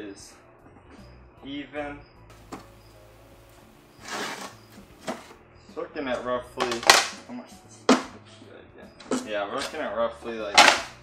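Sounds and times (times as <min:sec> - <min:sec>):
wooden board scraping over sill: 0:03.9 - 0:05.3.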